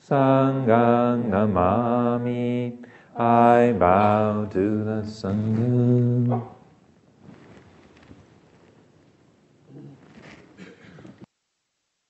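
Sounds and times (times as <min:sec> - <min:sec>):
man chanting in monotone: 0:00.0 - 0:06.6.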